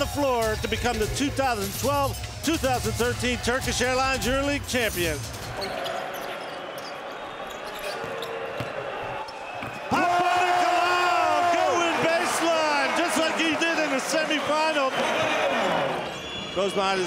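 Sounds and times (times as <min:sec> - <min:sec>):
arena crowd noise: 0:00.0 - 0:17.0
sneakers squeaking: 0:05.3 - 0:10.0.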